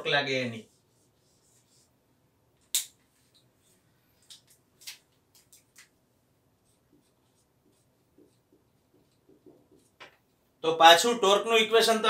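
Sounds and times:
marker pen squeaking on whiteboard: 6.6s - 10.2s.

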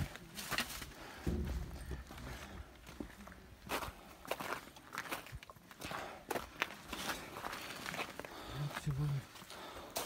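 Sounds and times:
footsteps on gritty snowy ground: 0.0s - 10.0s.

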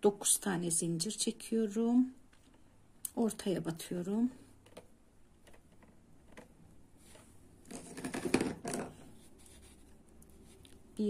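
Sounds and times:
thread scratching and rustling: 4.6s - 10.8s.

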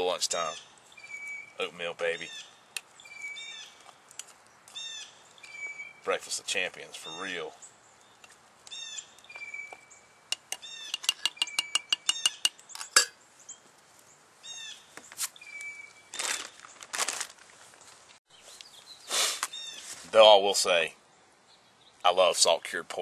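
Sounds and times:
songbird chirping: 0.0s - 17.0s, 17.8s - 22.8s
metal spoon scraping cook pot: 10.3s - 13.2s.

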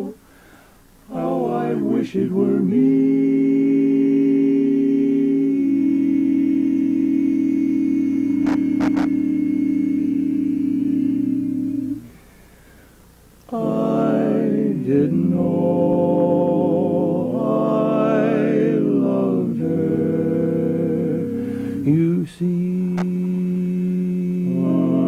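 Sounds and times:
male quartet singing a cappella: 0.0s - 12.3s, 13.4s - 25.0s.

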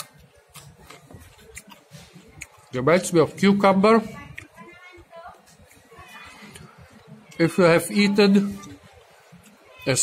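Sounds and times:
crunchy chewing: 0.0s - 2.8s.

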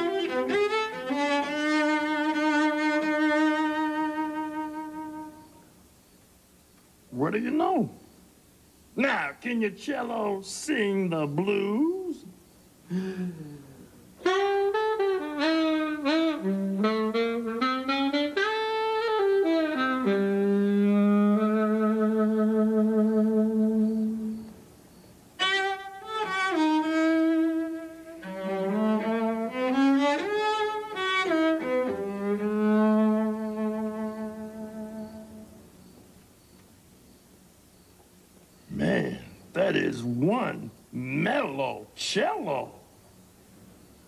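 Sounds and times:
saxophone blues phrase: 0.0s - 5.6s, 13.3s - 24.5s, 25.4s - 35.6s
bowed cello: 28.2s - 35.5s.

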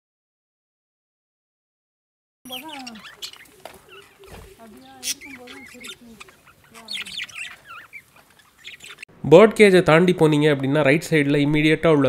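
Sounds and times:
faint voices: 2.5s - 8.3s
caged birds chirping and squawking: 2.5s - 9.2s.

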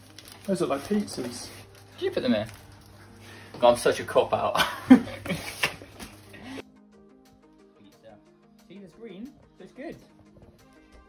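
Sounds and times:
quiet background music: 0.0s - 11.0s
people laughing: 4.5s - 6.6s.

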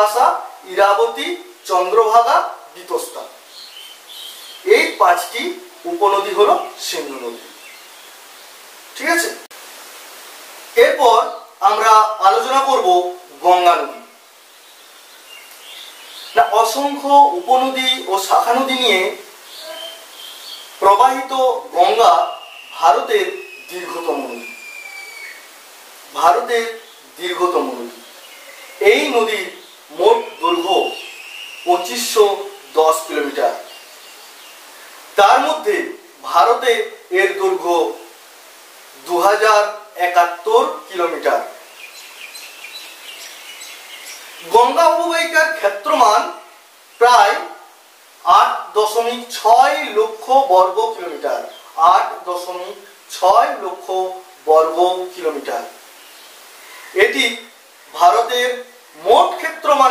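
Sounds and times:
low background hiss: 0.0s - 59.9s
faint high chirp tone: 19.6s - 20.4s, 21.8s - 25.5s, 28.1s - 28.8s.

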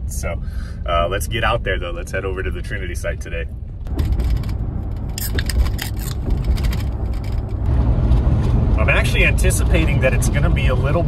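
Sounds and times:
van engine and road rumble: 0.0s - 11.0s
small irregular clicks and rattles: 3.9s - 7.7s.

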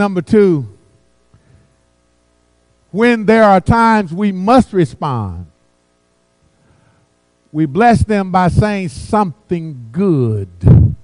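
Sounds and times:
man speaking: 0.0s - 0.8s, 3.0s - 5.5s, 7.6s - 11.0s
faint mains hum: 0.0s - 11.0s.

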